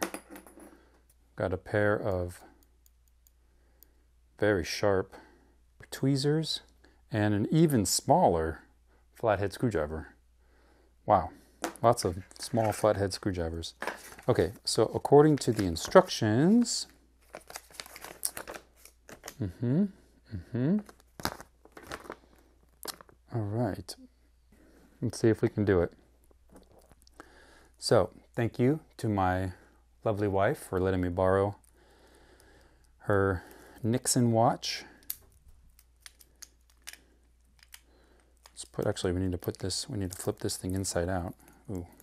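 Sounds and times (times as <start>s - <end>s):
paper leaflet rustling: 13.8s - 16.2s, 17.2s - 19.3s.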